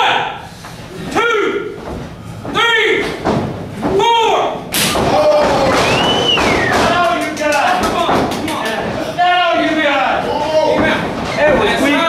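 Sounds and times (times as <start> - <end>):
voices: 0.0 - 12.0
quick sharp smacks: 4.7 - 8.7.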